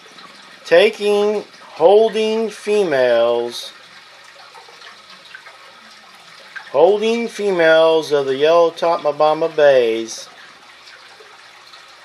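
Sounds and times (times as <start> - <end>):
aquarium water trickling: 0.0 - 12.0.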